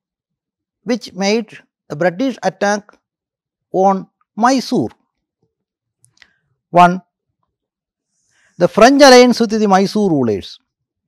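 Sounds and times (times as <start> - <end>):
faint clicks: 6.0 - 6.4.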